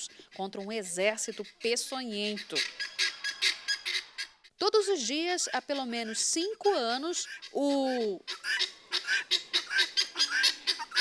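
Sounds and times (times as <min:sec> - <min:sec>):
chickens and guineafowl calling: 0:00.0 - 0:11.0.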